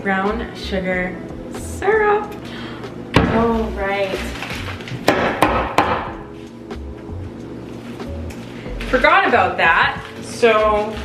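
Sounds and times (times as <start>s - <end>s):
background music: 0.0s - 11.0s
sugar bag knocking on surface: 5.0s - 6.2s.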